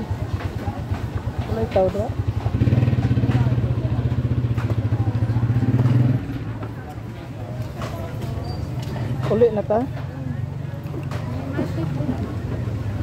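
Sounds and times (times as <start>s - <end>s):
motorcycle engine running: 0.0s - 11.2s.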